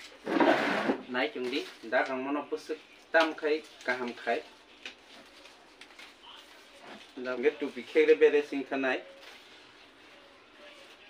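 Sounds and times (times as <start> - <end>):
palm leaves rustling and scraping: 0.0 - 11.0.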